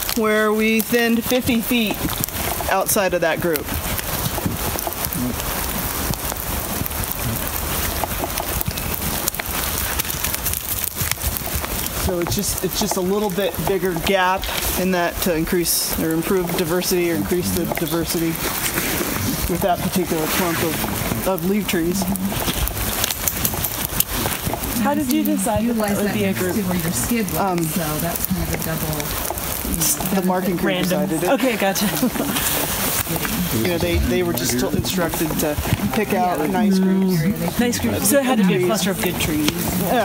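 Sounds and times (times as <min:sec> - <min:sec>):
raindrops pattering close: 0:00.0 - 0:40.0
steady rain falling: 0:00.0 - 0:40.0.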